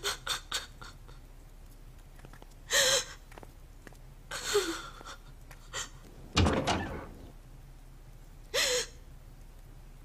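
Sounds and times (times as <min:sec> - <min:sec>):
wooden door banging: 0:06.2 - 0:07.4.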